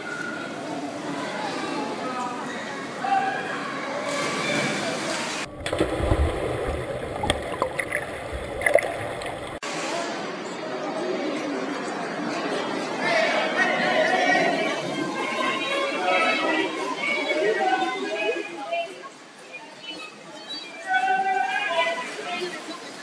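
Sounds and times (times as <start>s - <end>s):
voices chattering and echoing: 0.0s - 23.0s
swimmers splashing: 4.0s - 9.6s.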